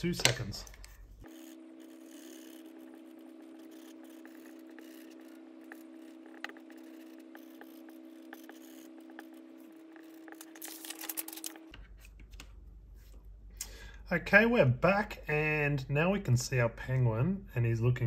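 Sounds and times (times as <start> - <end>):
faint steady hum: 0.0 - 18.0
pencil eraser rubbing on paper: 1.3 - 10.5.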